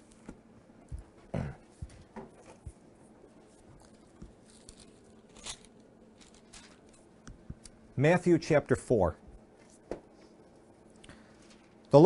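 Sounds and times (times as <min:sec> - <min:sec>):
thin pages being turned: 0:03.5 - 0:07.1.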